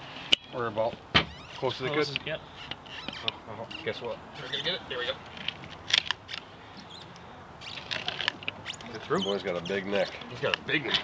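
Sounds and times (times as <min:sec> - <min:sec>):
faint high-pitched squeaks: 0:01.2 - 0:05.2, 0:06.5 - 0:10.5.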